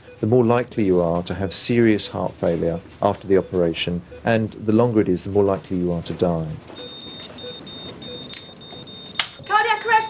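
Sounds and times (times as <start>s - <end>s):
patient monitor alarm beeps: 0.0s - 10.0s.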